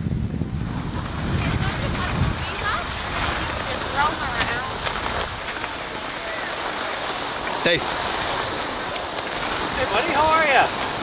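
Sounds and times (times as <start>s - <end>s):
wind buffeting microphone: 0.0s - 11.0s
children chattering: 1.5s - 4.8s.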